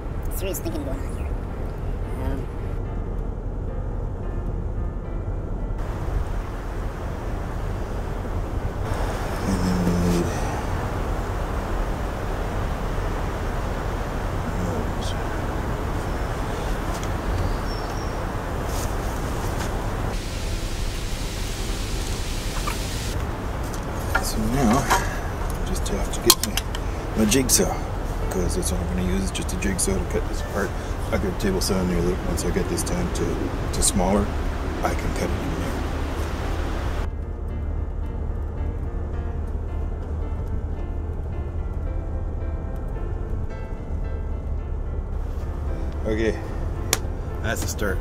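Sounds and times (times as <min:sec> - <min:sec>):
car road and engine noise: 0:00.0 - 0:48.0.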